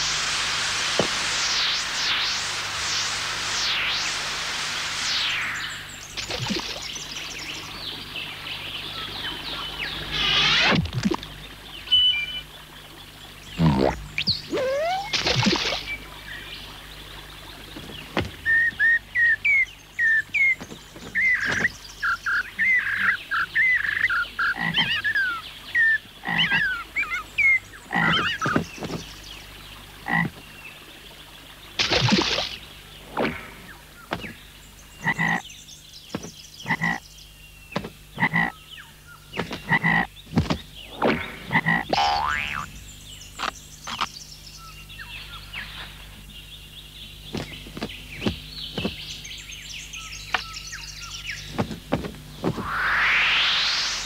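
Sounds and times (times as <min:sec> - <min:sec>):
loud noisy burst: 0:00.0 - 0:06.9, 0:52.5 - 0:54.0
cartoon frog croaks: 0:13.6 - 0:15.7, 0:27.9 - 0:28.6, 0:36.7 - 0:37.0, 0:38.2 - 0:38.6, 0:41.0 - 0:42.7
quick chirping calls: 0:13.6 - 0:15.9.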